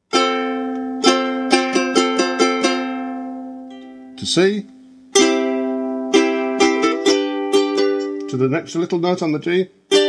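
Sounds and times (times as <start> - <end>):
ukulele strumming: 0.0 - 10.0.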